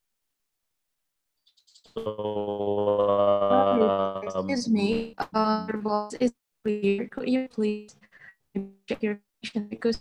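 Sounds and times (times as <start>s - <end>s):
garbled choppy voice: 2.0s - 7.8s.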